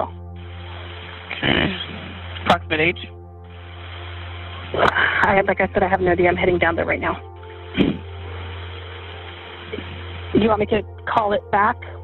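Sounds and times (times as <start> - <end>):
telephone line hiss and hum: 0.0 - 12.0.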